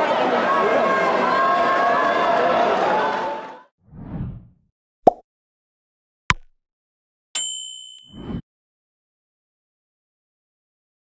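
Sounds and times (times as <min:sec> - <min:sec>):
notification bell ding: 0:07.4 - 0:08.4.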